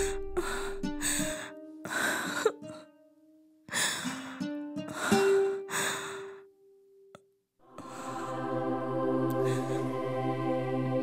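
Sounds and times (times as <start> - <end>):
woman crying: 0.0 - 2.9, 4.9 - 6.2
soft background music: 0.0 - 6.2, 7.8 - 11.0.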